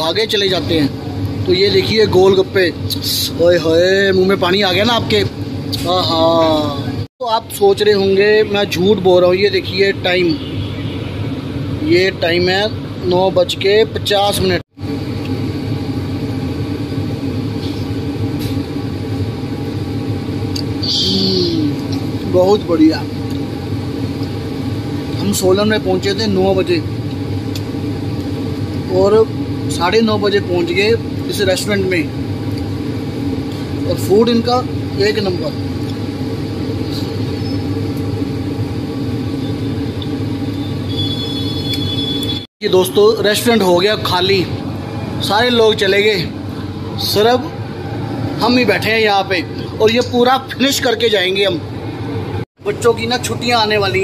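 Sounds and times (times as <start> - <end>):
low machine hum with rumble: 0.0 - 54.0.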